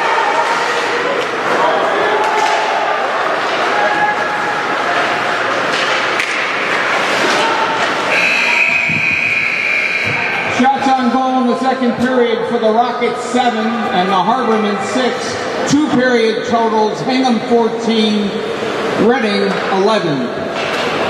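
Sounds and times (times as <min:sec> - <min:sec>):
spectators' voices echoing: 0:00.0 - 0:21.0
hockey sticks and puck knocking: 0:04.9 - 0:08.2
long high-pitched signal: 0:08.1 - 0:10.5.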